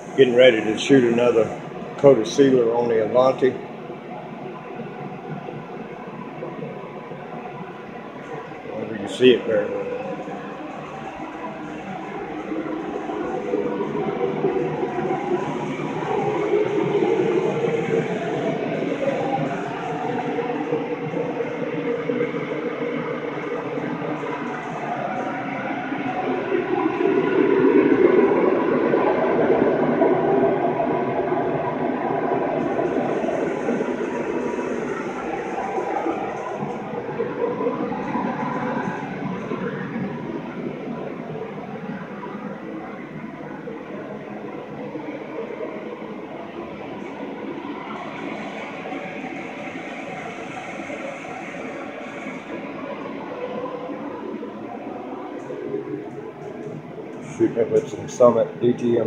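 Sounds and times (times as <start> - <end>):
steady machine noise: 0.0 - 59.0.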